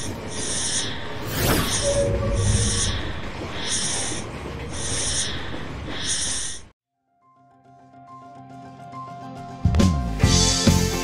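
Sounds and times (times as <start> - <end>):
hissing swishes: 0.2 - 6.7
sweeping whoosh: 1.2 - 5.1.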